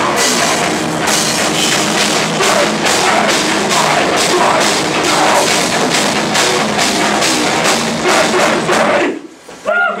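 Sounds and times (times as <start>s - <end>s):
live metal band playing: 0.0s - 9.5s.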